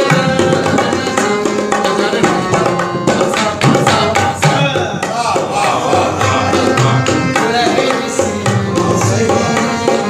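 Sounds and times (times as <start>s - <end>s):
harmonium sustained notes: 6.0s - 10.0s.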